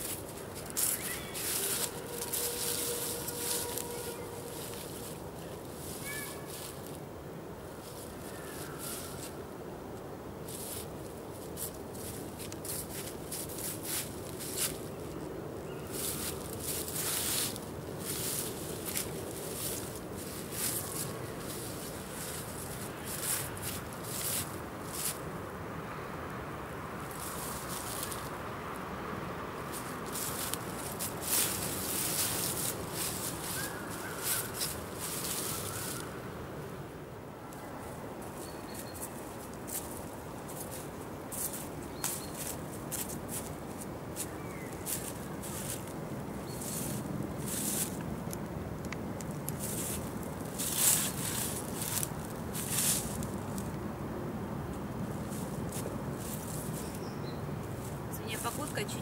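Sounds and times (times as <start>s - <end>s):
leaves rustling underfoot: 0.0s - 25.9s, 26.8s - 59.0s
outdoor background hum: 0.0s - 59.0s.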